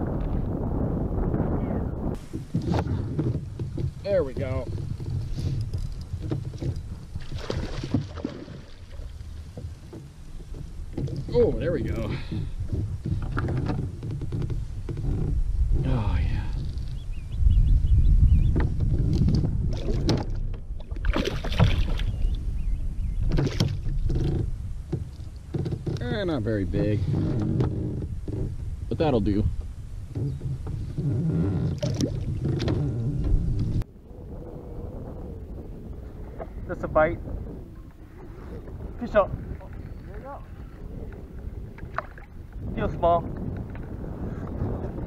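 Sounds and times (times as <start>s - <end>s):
wind rumble on microphone: 0.0s - 45.0s
knocks and splashes: 2.2s - 15.1s, 18.5s - 22.3s, 23.2s - 26.0s, 30.2s - 33.8s, 41.8s - 43.9s
water washing: 7.0s - 12.6s.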